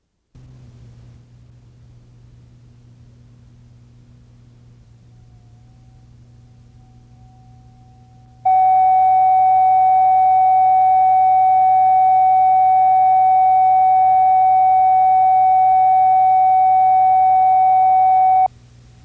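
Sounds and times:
steady test tone: 0:05.0 - 0:18.5.

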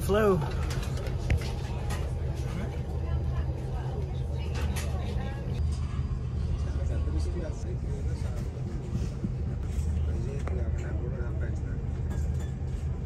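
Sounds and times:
airliner cabin rumble: 0:00.0 - 0:13.0
faint passenger voices: 0:00.0 - 0:13.0.

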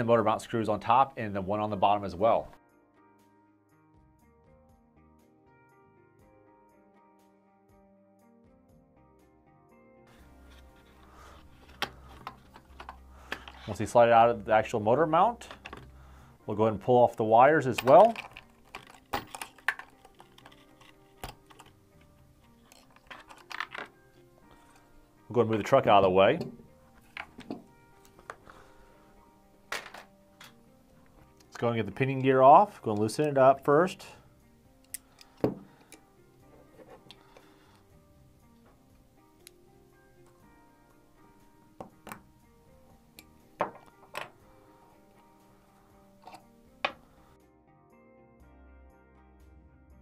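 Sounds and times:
quiet background music: 0:00.0 - 0:50.0
wires rattling: 0:17.6 - 0:24.8
screwdriver clicks and knocks on gear: 0:17.8 - 0:21.8.

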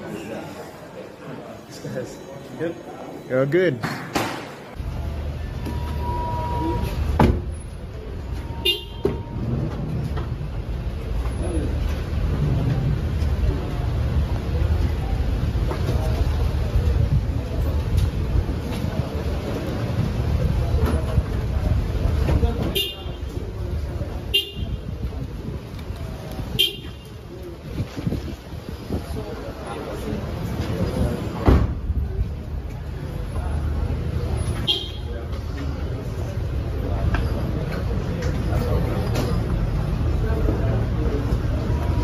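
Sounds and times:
traffic noise: 0:00.0 - 0:42.0
voices: 0:00.0 - 0:42.0
vehicle engine rumbling: 0:04.6 - 0:42.0
horn toot: 0:08.4 - 0:09.4.

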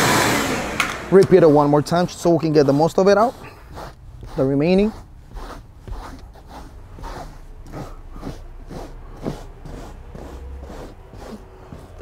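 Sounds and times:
rubber brush scraping upholstery: 0:01.2 - 0:12.0.

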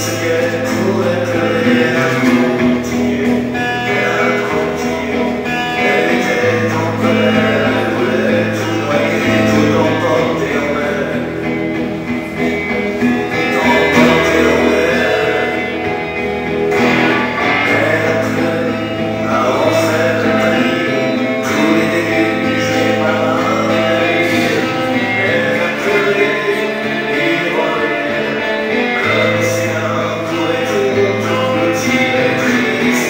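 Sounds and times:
acoustic guitar strumming: 0:00.0 - 0:33.0
man singing: 0:00.0 - 0:33.0.

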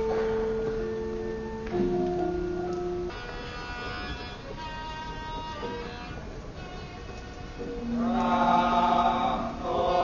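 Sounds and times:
gamelan playing: 0:00.0 - 0:04.4.

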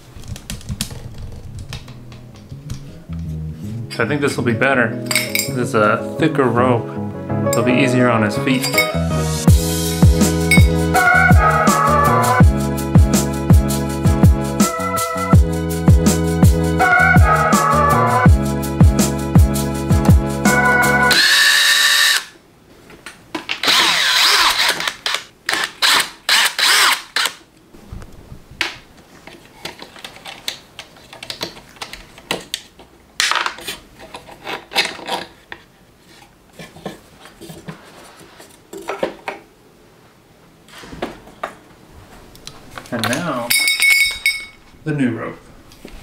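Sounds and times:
cordless drill whining: 0:21.1 - 0:22.3, 0:23.6 - 0:27.4.

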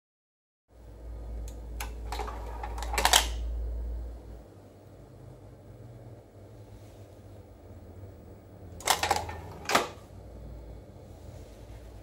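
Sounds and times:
disc drawer motor hum: 0:00.9 - 0:04.5, 0:07.6 - 0:12.0
mechanism clicks: 0:01.4 - 0:03.5, 0:08.8 - 0:10.0.

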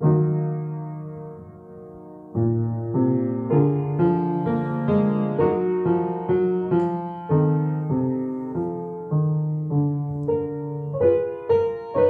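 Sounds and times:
solo upright piano melody: 0:00.0 - 0:12.0.

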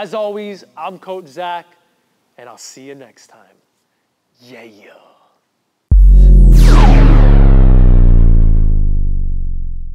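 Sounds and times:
deep synthesized bass hit: 0:05.9 - 0:09.9.

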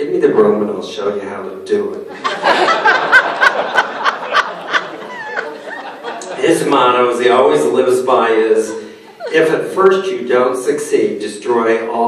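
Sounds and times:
people laughing: 0:02.1 - 0:10.6.

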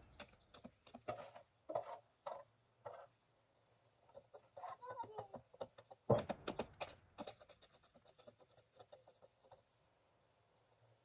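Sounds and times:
rake scraping leaves on concrete: 0:00.8 - 0:03.2.

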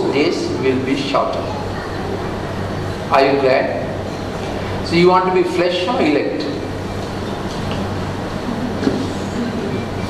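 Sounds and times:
low electrical hum: 0:00.0 - 0:10.0
rushing room noise: 0:00.0 - 0:10.0.

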